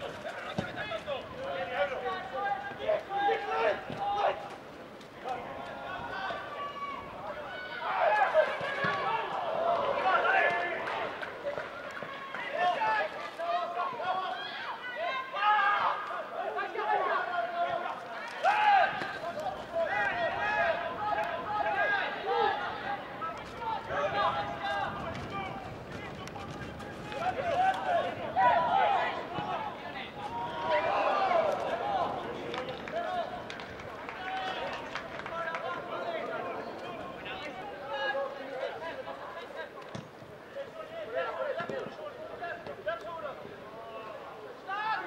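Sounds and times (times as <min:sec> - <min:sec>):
footballers shouting: 0:00.0 - 0:45.0.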